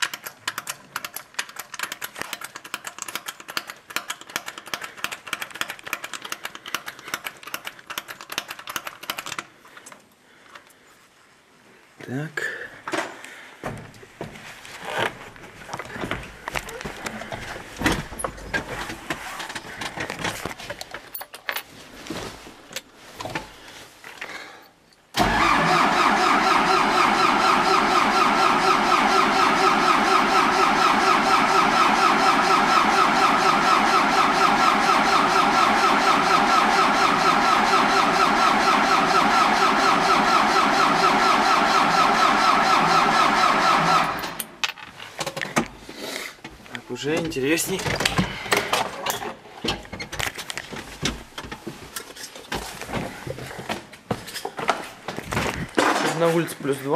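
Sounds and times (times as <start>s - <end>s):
tractor diesel engine running: 25.2s - 44.5s.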